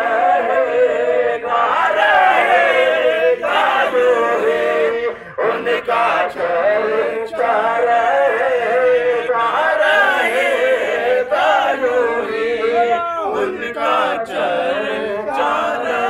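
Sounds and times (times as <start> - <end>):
man singing through loudspeaker: 0.0 - 16.0.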